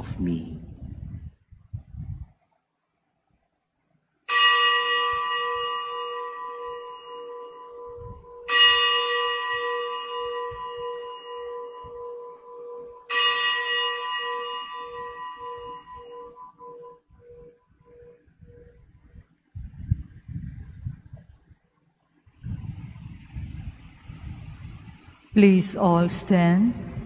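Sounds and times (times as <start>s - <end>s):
bell ringing: 4.3s - 18.2s.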